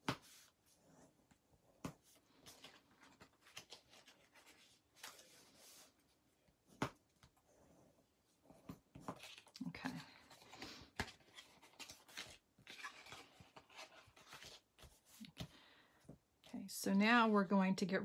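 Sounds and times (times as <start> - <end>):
paper rustling: 2.0 - 6.0, 8.9 - 15.5.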